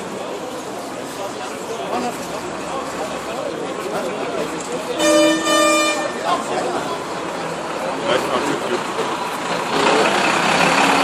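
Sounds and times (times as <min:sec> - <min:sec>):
crowd chatter: 0:00.0 - 0:11.0
horn blasts: 0:04.9 - 0:06.4.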